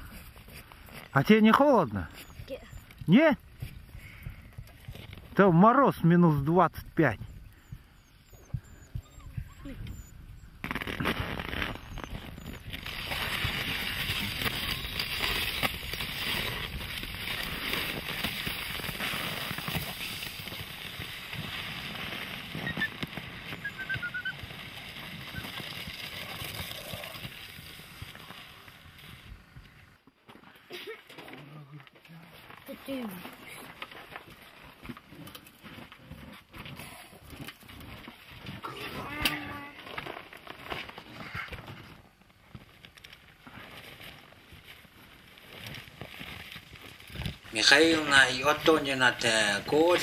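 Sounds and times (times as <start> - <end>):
footsteps crunching snow: 10.6 - 29.8, 32.2 - 50.0
sled runners scraping snow: 10.7 - 29.9, 32.2 - 50.0.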